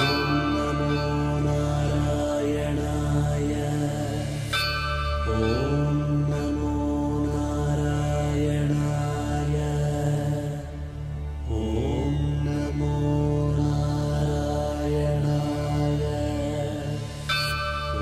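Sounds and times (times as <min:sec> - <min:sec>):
mantra chanting with music: 0:00.0 - 0:18.0
steady low drone: 0:00.0 - 0:18.0.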